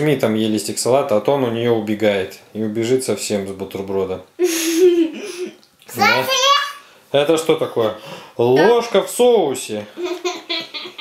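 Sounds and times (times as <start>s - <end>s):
young child's held tone: 5.9s - 6.9s.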